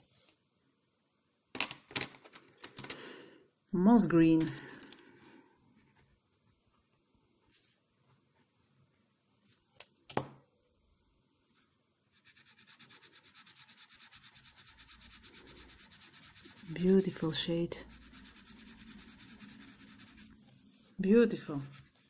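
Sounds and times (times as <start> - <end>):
pencil scratching on paper: 12.1 - 22.0.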